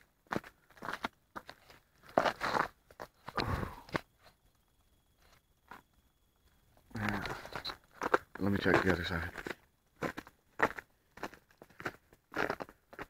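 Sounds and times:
footsteps crunching in snow: 7.0s - 13.0s.

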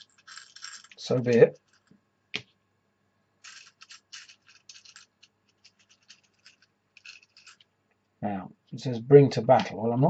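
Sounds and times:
hand scratching board-game pieces: 0.0s - 1.9s, 3.4s - 7.6s.

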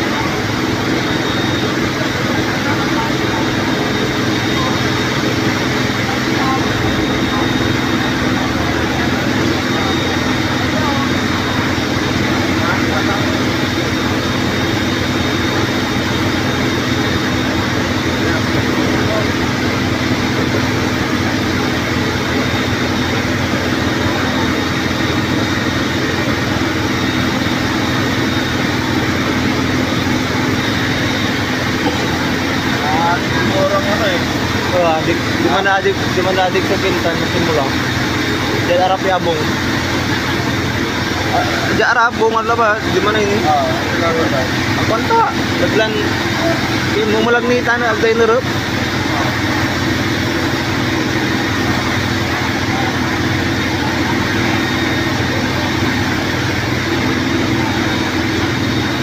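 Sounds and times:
crowd chatter: 0.0s - 59.0s
fire truck engine running: 0.0s - 59.0s.

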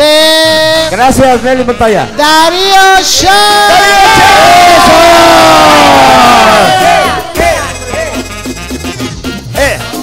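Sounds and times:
person shouting: 2.3s - 7.8s.

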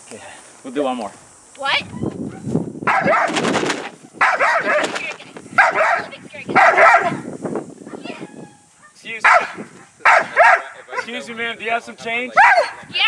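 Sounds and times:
dog barking: 2.3s - 3.4s, 4.2s - 5.0s, 5.6s - 7.2s, 8.8s - 11.2s, 12.4s - 12.9s.

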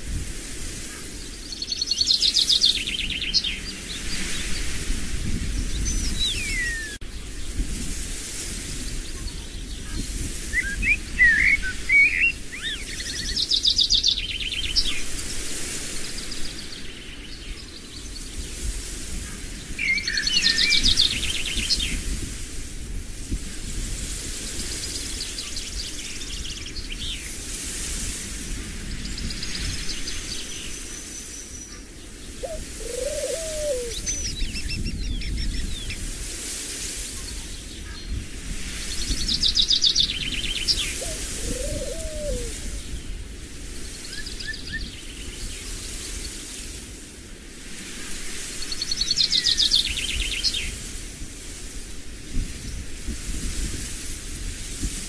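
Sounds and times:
songbirds chirping and trilling: 0.9s - 7.6s, 8.8s - 22.1s, 29.0s - 36.1s, 37.2s - 46.8s
lower bird call: 5.8s - 7.0s, 9.1s - 15.0s, 30.8s - 36.0s, 39.4s - 43.0s.

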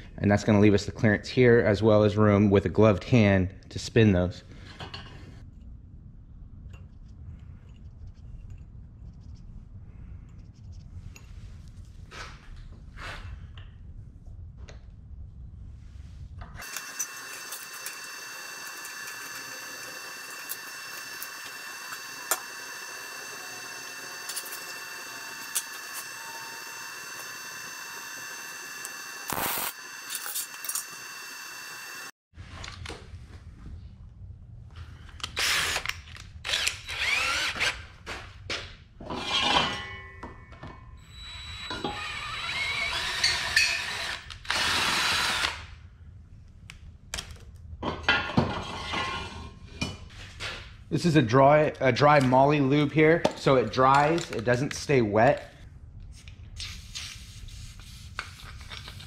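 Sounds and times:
cordless drill running: 16.6s - 32.1s, 35.4s - 35.9s, 36.5s - 37.8s, 41.1s - 45.6s
gas torch hissing and whistling: 16.6s - 32.1s.

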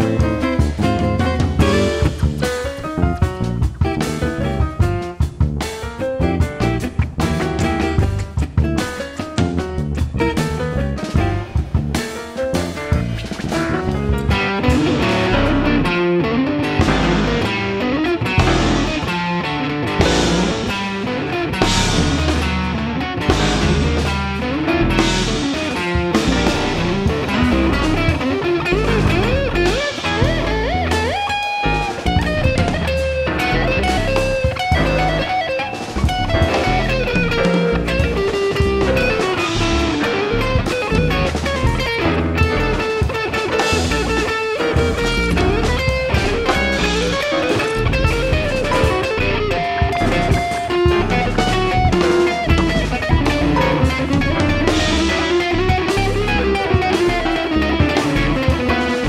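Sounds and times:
busy drums: 0.0s - 59.0s
electric guitar bent notes: 0.0s - 59.0s.

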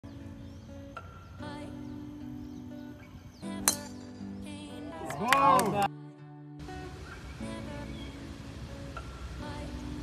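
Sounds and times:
background music: 0.0s - 10.0s
golf club striking ball: 3.6s - 4.2s.

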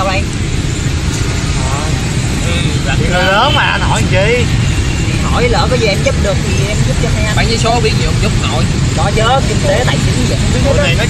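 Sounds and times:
city traffic rumble: 0.0s - 11.0s.

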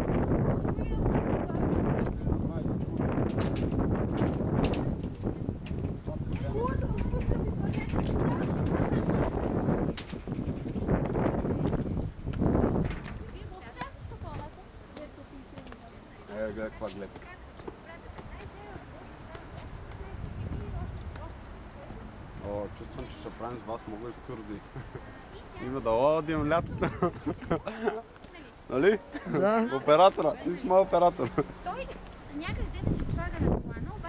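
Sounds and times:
wind buffeting microphone: 0.0s - 28.7s, 29.9s - 34.0s
footsteps on footbridge deck: 1.3s - 34.0s
faint voices: 13.0s - 34.0s.

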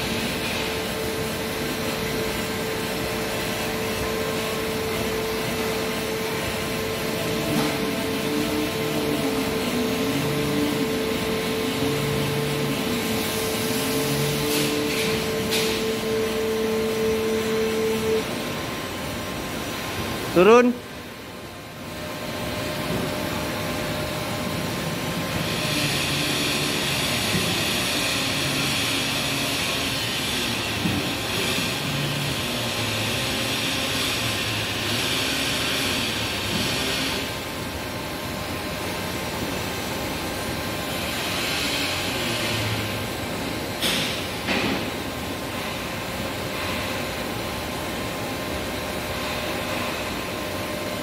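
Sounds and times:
lift mechanical running noise: 0.0s - 51.0s.

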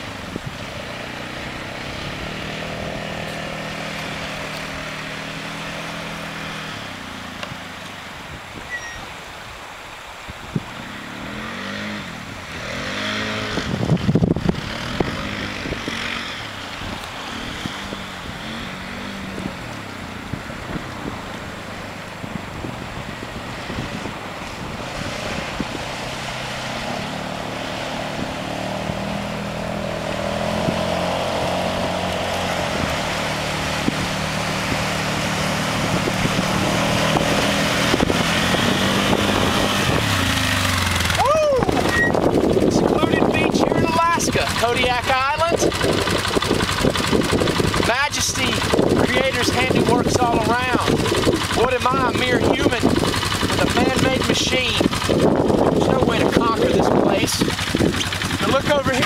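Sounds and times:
off-road vehicle engine revving: 0.0s - 7.9s, 10.8s - 59.0s.

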